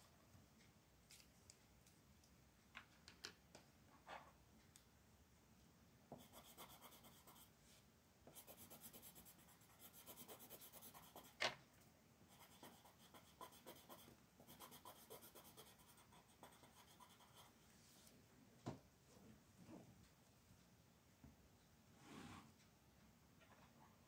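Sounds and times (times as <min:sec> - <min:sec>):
pencil shading on paper: 0:06.2 - 0:07.5, 0:08.3 - 0:11.4, 0:12.3 - 0:17.5.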